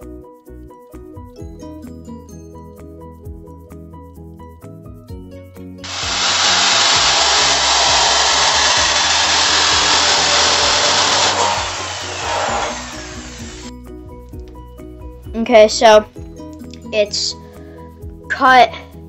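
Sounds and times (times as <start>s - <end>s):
power tool cutting metal: 5.8s - 13.7s.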